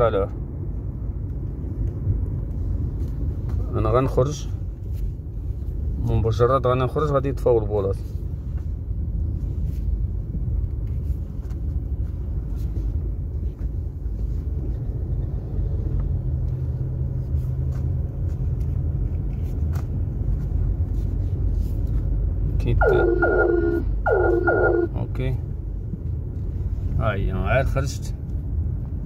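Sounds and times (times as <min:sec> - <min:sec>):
car interior low rumble: 0:00.0 - 0:29.0
man speaking: 0:22.6 - 0:23.6.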